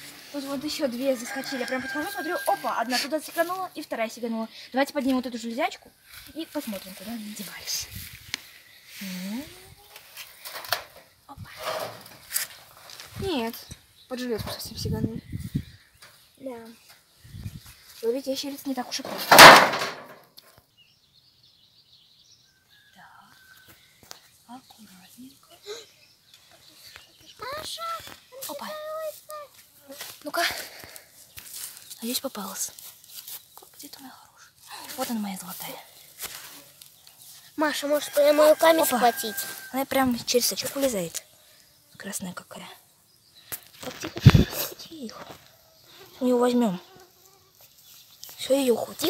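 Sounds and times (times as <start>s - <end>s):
net rustling on grass: 0.0s - 3.9s, 6.0s - 13.6s, 26.7s - 34.1s, 34.8s - 41.1s.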